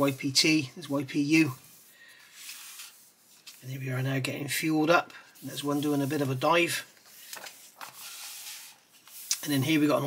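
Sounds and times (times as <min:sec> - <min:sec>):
book page turning: 0:02.3 - 0:03.7, 0:05.8 - 0:09.9.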